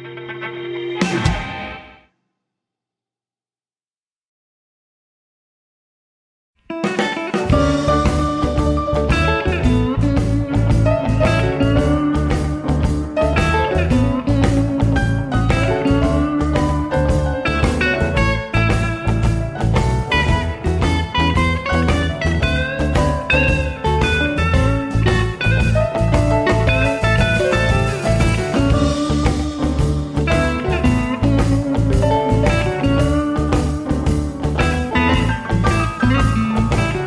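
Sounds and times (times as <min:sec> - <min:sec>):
bass guitar: 0:00.0 - 0:02.0, 0:06.7 - 0:37.0
lead guitar: 0:00.0 - 0:02.0, 0:06.7 - 0:37.0
drum groove: 0:06.8 - 0:37.0.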